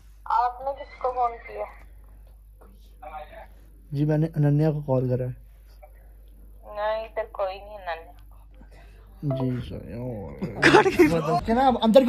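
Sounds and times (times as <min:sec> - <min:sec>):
person talking: 0:09.2 - 0:11.6.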